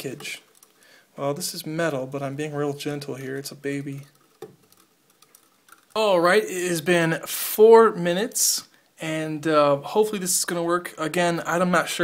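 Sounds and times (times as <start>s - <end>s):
faint small clicks: 0.2s - 0.8s.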